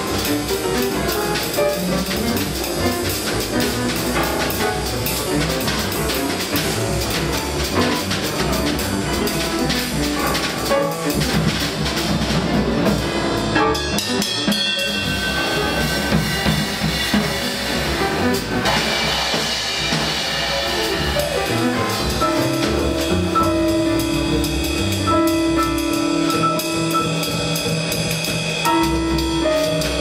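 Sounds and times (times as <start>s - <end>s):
bass: 0.0s - 30.0s
busy drum kit: 0.0s - 30.0s
piano: 0.0s - 30.0s.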